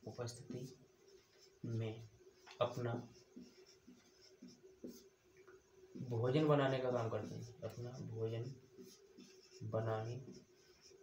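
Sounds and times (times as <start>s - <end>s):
marker pen writing on whiteboard: 0.0s - 11.0s.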